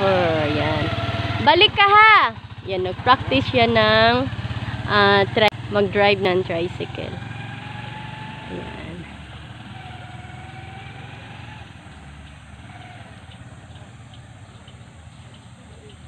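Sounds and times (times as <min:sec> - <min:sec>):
motorcycle engine pulling away: 0:00.0 - 0:16.0.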